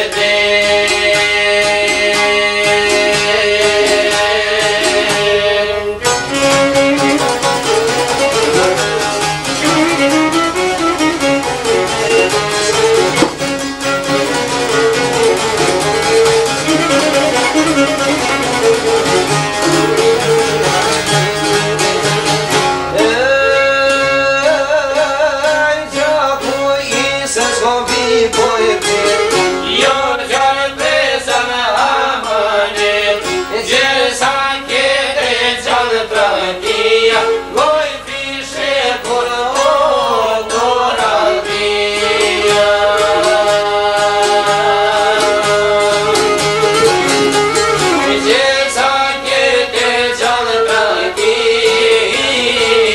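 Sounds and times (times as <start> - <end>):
plucked lutes and violin playing: 6.1 - 23.2, 33.0 - 34.2, 45.4 - 48.3
man singing: 22.9 - 52.9.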